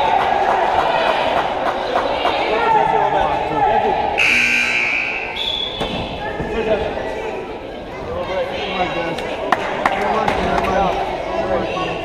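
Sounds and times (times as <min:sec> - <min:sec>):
crowd chatter in large hall: 0:00.0 - 0:12.0.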